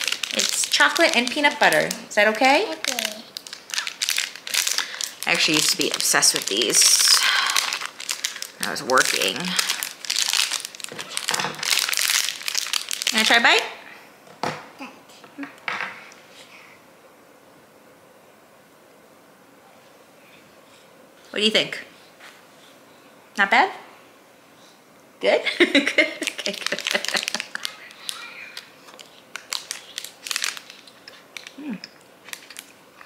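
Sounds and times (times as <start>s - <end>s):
plastic wrapper crinkling: 0.0s - 13.6s, 26.1s - 33.0s.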